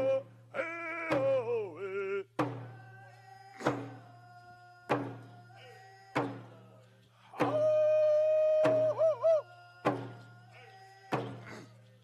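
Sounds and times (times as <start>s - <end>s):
hand drum beats: 7.4s - 10.2s.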